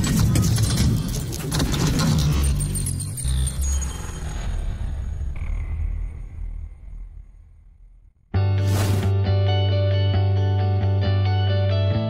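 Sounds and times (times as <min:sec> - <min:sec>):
deep rumble: 0:03.7 - 0:08.4.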